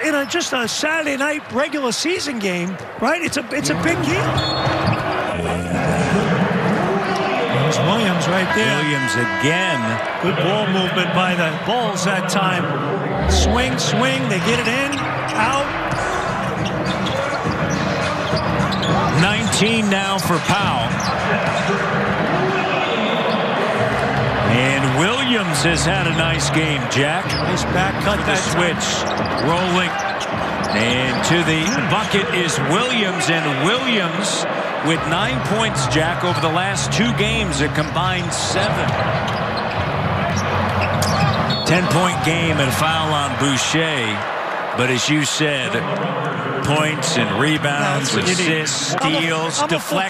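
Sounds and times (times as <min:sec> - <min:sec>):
arena background noise: 0:00.0 - 0:50.0
shoe squeaks: 0:04.3 - 0:05.3, 0:14.4 - 0:19.2, 0:39.2 - 0:41.9.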